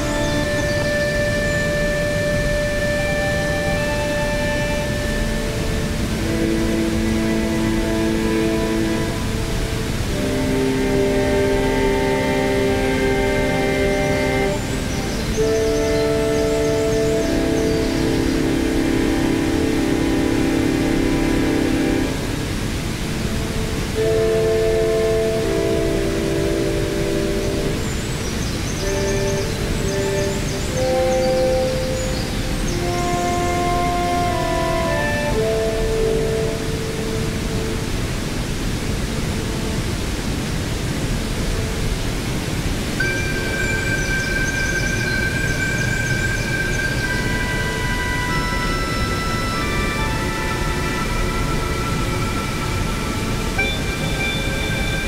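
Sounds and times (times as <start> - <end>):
waterfall rushing: 0.0 - 55.0
synthesizer chords through small speaker: 10.1 - 22.8, 43.0 - 55.0.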